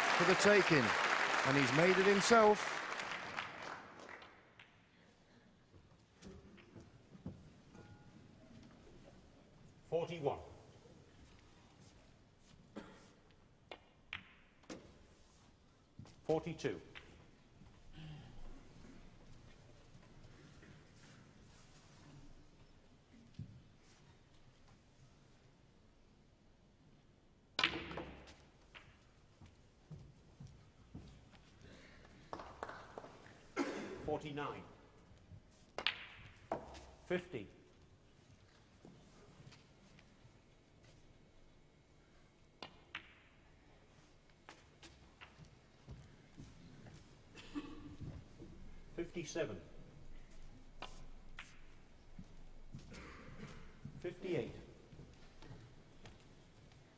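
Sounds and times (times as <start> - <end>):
snooker balls clicking: 35.0 - 37.0, 42.6 - 46.1.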